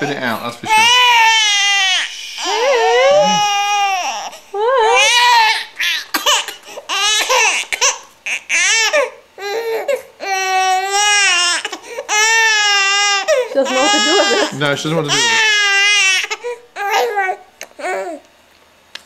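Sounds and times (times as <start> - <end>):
baby crying: 0.0 - 18.2.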